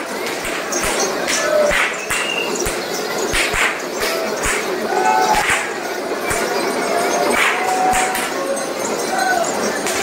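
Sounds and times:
crowd din: 0.0 - 10.0.

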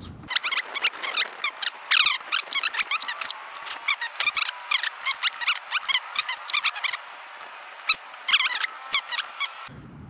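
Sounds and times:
high squeaky chirps: 0.2 - 9.7.

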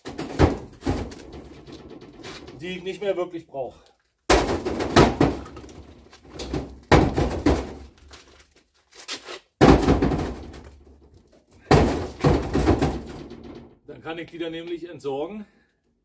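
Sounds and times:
concrete crashing into metal trailer: 0.0 - 2.8, 4.3 - 8.0, 9.6 - 10.8, 11.6 - 13.7.

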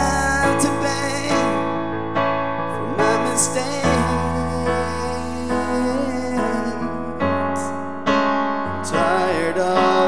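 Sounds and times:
person singing: 0.0 - 1.8, 2.7 - 7.8, 8.7 - 10.0
digital piano chords: 0.0 - 10.0.

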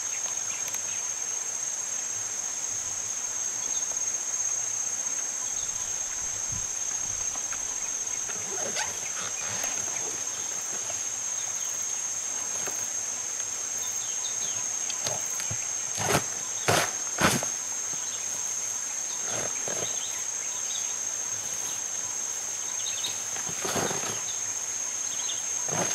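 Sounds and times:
high-pitched insect chorus: 0.0 - 25.9
gorilla rustling and chewing: 8.2 - 11.0.

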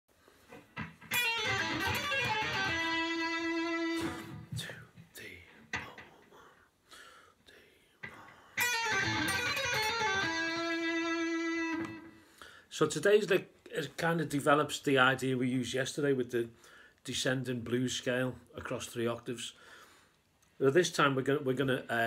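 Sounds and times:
electric guitar blues lick: 0.5 - 4.6, 8.0 - 12.2.

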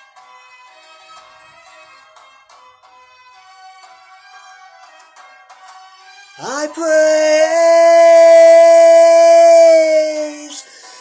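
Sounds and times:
man singing a held note: 6.4 - 10.7.

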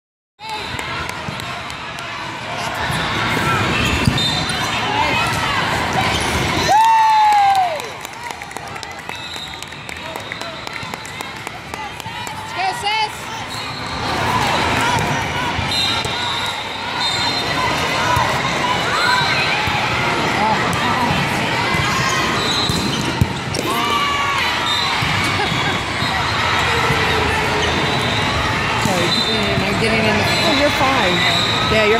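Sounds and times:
players and spectators calling out: 0.4 - 31.9.

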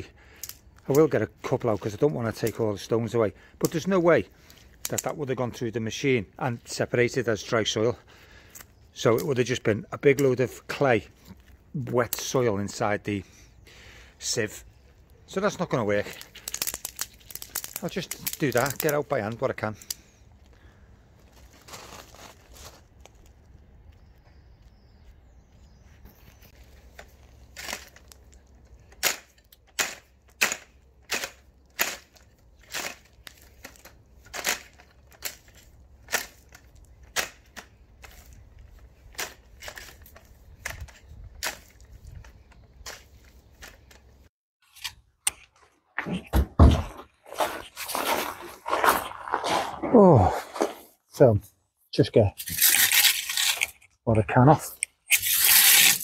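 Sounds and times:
rake scraping through gravel: 46.9 - 51.0, 52.4 - 53.8, 55.1 - 56.0.

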